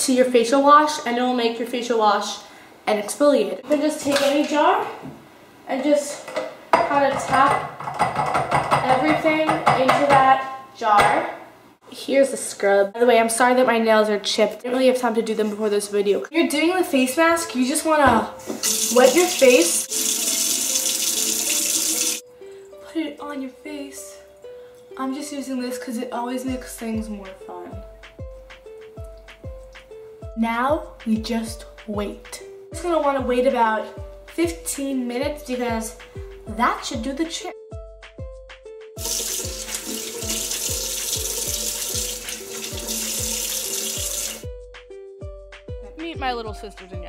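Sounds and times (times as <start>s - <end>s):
background music with steady beat: 16.4s - 47.0s
tap water running into sink: 18.5s - 22.2s, 39.0s - 44.5s.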